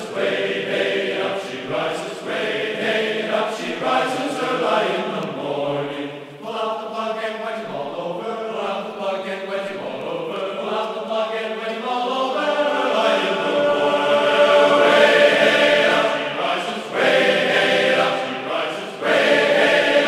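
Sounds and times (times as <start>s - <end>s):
choir singing long held notes: 0.0s - 20.0s.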